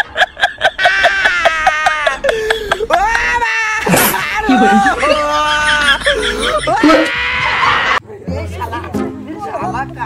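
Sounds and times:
man wailing in mock crying: 0:00.3 - 0:08.0.

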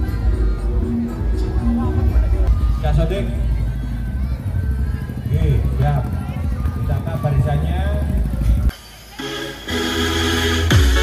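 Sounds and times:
loud music with heavy bass: 0:08.7 - 0:11.0.

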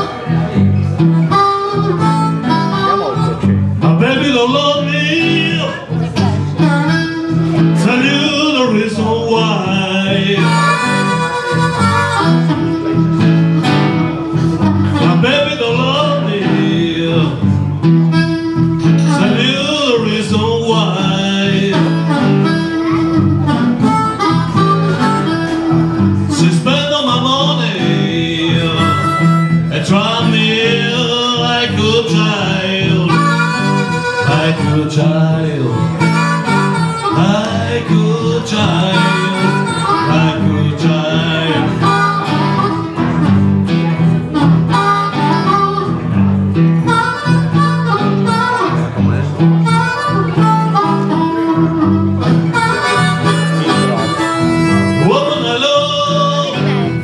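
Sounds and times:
harmonica: 0:00.0 - 0:57.0
resonator guitar: 0:00.0 - 0:57.0
man singing: 0:02.5 - 0:44.1, 0:48.0 - 0:57.0.

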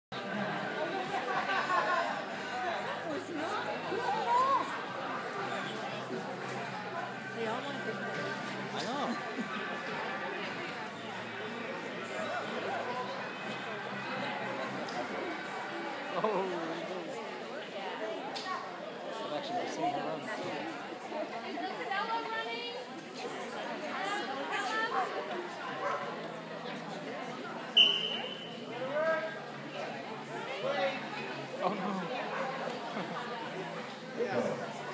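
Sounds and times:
background chatter: 0:00.1 - 0:34.9.

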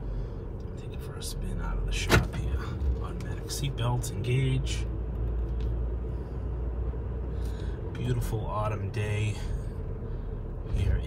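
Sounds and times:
car engine idling rumble: 0:00.0 - 0:11.0.

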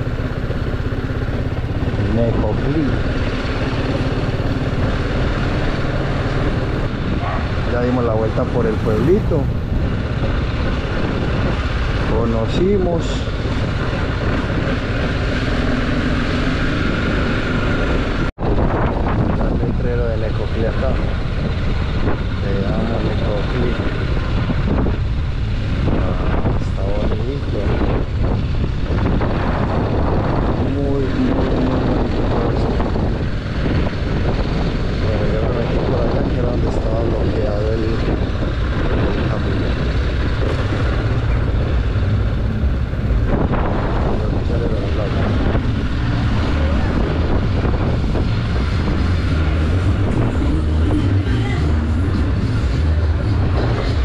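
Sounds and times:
motorcycle engine running: 0:00.0 - 0:54.0
wind rushing over microphone: 0:00.0 - 0:54.0.

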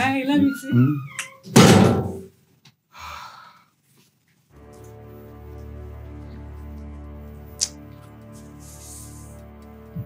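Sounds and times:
loud thud: 0:01.6 - 0:02.3.

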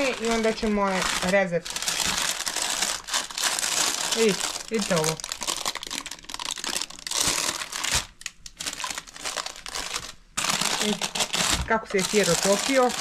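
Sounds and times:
baking paper crinkling: 0:00.0 - 0:13.0.

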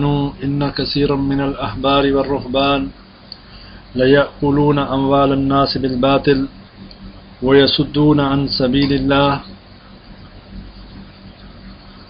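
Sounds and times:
even hiss: 0:00.0 - 0:12.0
low background hum: 0:00.0 - 0:12.0.

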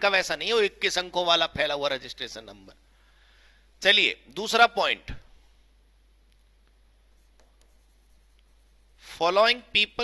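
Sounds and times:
stylus scratching on touchscreen: 0:07.1 - 0:09.0.

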